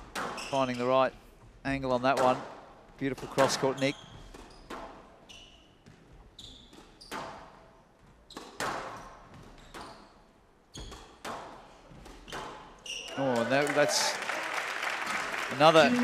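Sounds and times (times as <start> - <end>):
squash ball hits: 0.0 - 0.5, 8.3 - 10.0, 10.8 - 12.8
shoes squeaking on court floor: 0.2 - 1.0, 3.3 - 13.3.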